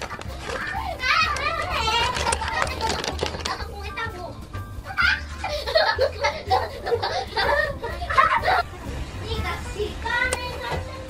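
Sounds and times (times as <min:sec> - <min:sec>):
children cackling with laughter: 0:00.0 - 0:04.1, 0:04.8 - 0:10.2.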